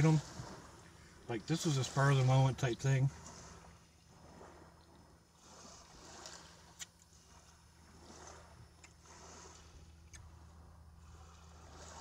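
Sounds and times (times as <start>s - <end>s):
faint washes of noise: 0.0s - 12.0s.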